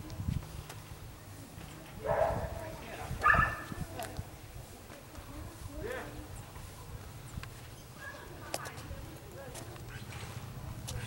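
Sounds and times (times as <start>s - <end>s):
dog barking: 2.0s - 2.6s, 3.2s - 3.7s.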